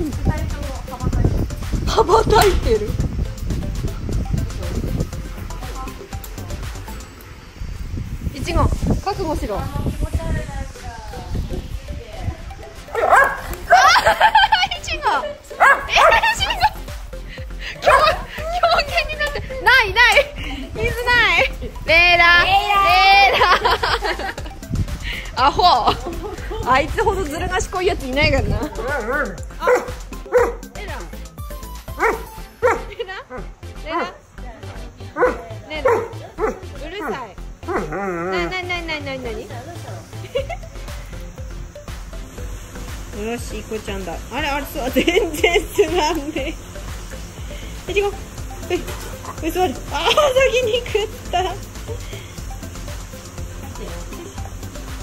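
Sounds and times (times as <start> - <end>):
dog barking and yipping: 12.9 - 14.2, 15.6 - 16.7, 17.8 - 18.3, 29.0 - 30.7, 31.9 - 34.2, 35.2 - 38.1.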